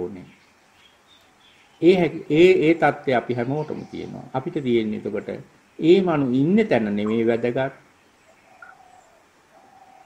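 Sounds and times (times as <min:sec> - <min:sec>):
man speaking: 0:00.0 - 0:00.3, 0:01.8 - 0:07.8
faint thin steady tones: 0:00.0 - 0:10.0.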